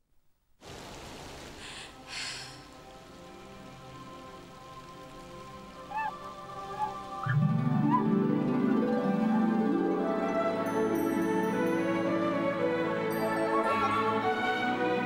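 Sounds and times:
steady rain: 0.5 - 15.0
soft music: 1.9 - 15.0.

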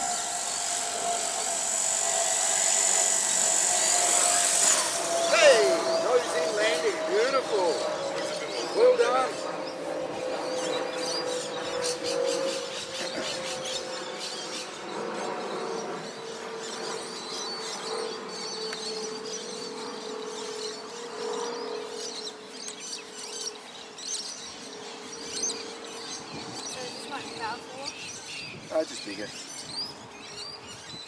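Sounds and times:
steady low drone: 0.0 - 28.6
birds chirping: 0.0 - 31.0.

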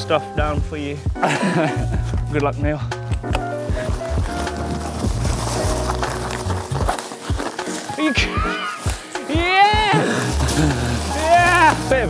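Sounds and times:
music with sustained notes: 0.0 - 12.0.

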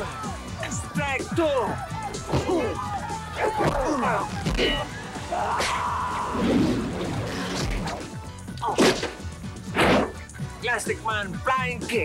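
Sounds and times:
background music: 0.0 - 12.0
loud hit whacks: 8.7 - 10.2.

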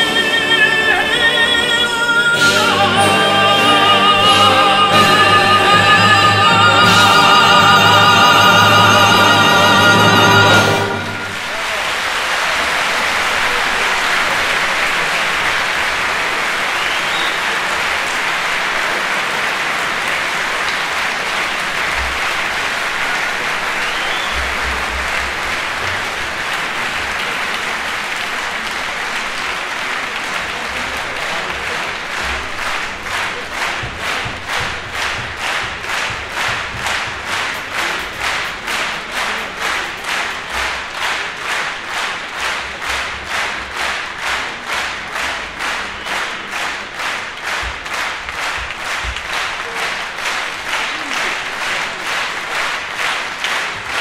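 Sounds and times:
audience applauding: 0.0 - 54.0
rhythmic clapping in unison: 0.0 - 54.0.

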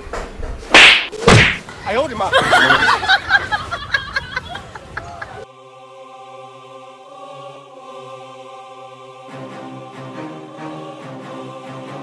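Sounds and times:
whip-like swishes: 0.7 - 1.6.

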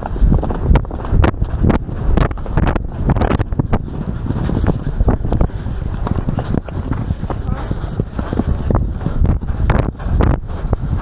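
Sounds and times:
heavy hoofbeats on grass: 0.0 - 11.0.

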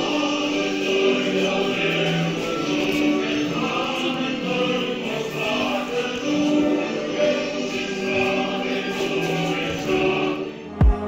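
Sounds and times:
choir singing long held notes: 0.0 - 11.0.

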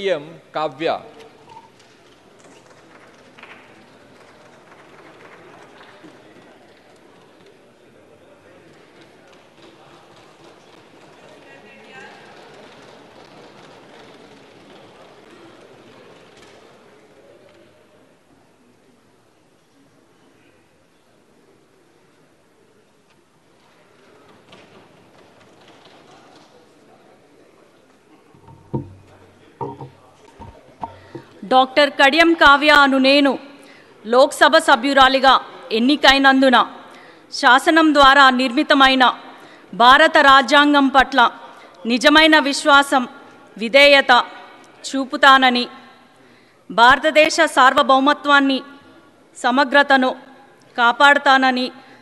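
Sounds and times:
low murmur of voices: 1.1 - 36.0
faint footsteps: 28.2 - 31.5
faint knocks: 28.3 - 31.4.

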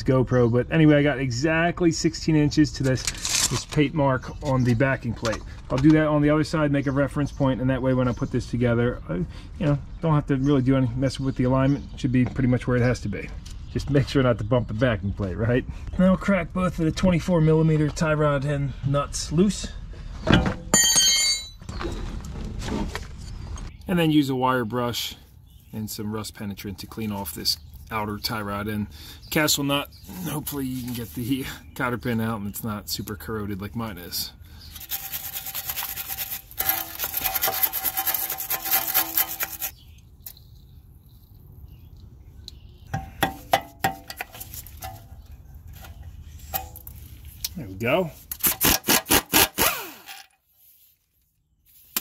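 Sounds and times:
tools being handled: 2.8 - 3.9, 34.7 - 40.4
wire brush scrubbing metal: 34.8 - 39.8.

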